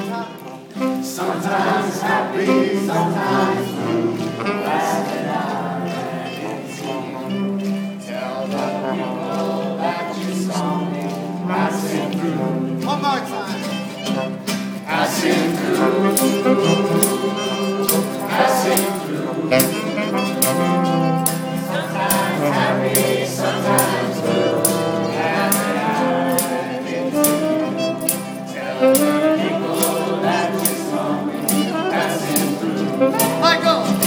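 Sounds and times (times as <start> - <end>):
acoustic guitars: 0.0 - 34.0
voices singing a chorus: 0.0 - 34.0
tambourine struck: 15.6 - 34.0.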